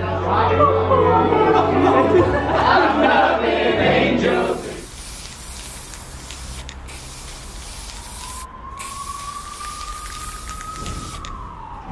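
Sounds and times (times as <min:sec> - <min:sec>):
spray-paint can hissing: 0:04.4 - 0:11.3.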